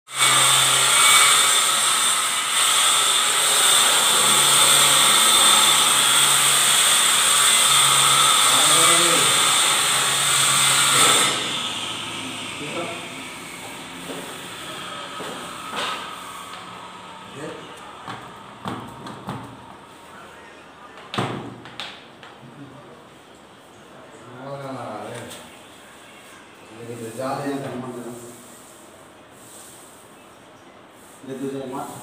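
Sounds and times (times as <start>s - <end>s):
power tool whining: 0.1s - 18.2s.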